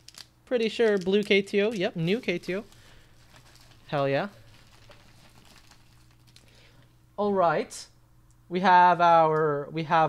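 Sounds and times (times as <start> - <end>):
padded mailer crinkling: 0.0 - 6.7.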